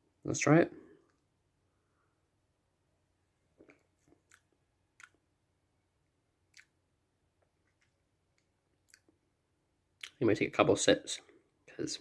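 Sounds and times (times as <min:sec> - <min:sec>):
lip and tongue clicks: 0:03.6 - 0:05.2, 0:06.5 - 0:06.8, 0:07.6 - 0:09.2.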